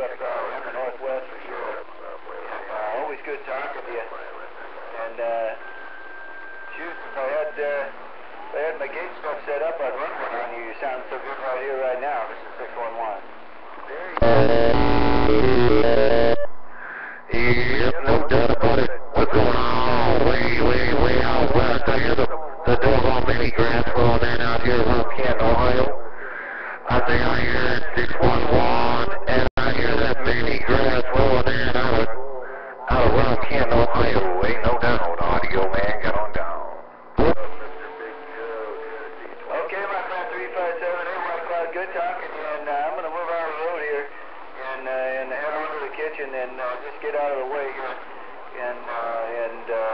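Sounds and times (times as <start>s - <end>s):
voice over radio speaker: 0.0s - 49.9s.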